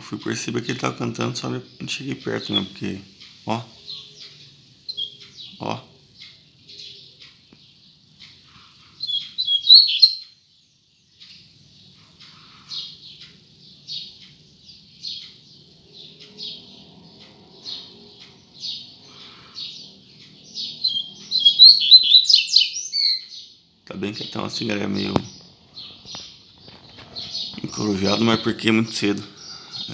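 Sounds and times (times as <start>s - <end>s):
bird song bursts: 0.0s - 29.9s
bird chipping softly: 0.2s - 29.9s.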